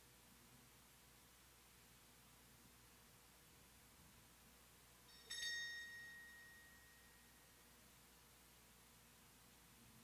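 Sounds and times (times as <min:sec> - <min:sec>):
altar bell ringing: 0:05.1 - 0:07.6.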